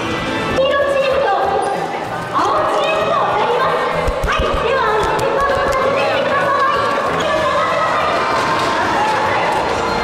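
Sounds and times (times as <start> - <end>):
people chattering in echoing hall: 0.0 - 10.0.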